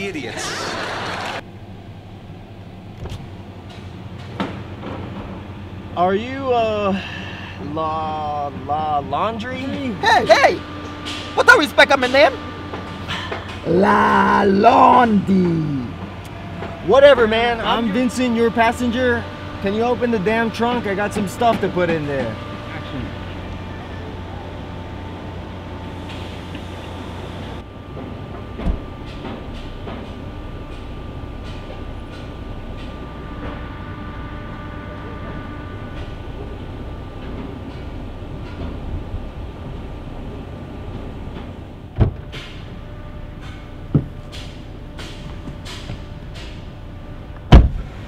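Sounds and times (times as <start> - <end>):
car engine idling hum: 0.0 - 48.0
car doors thumping shut: 41.9 - 42.4, 43.9 - 44.2, 47.5 - 47.9.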